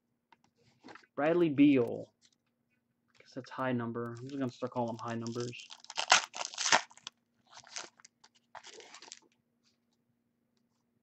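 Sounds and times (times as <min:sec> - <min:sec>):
foil wrappers crinkling: 0:04.2 - 0:09.3.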